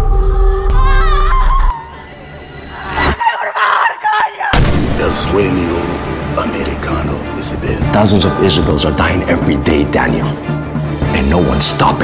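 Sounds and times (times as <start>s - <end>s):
woman crying out: 3.0s - 4.6s
loud hit with deep bass: 4.6s - 5.3s.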